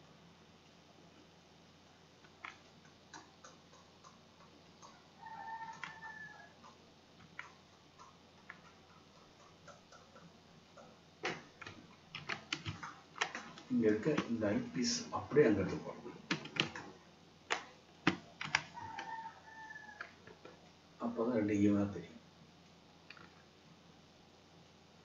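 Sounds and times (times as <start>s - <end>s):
computer mouse clicking: 2.2s - 14.4s, 16.2s - 16.9s, 17.5s - 19.2s, 23.1s - 23.4s.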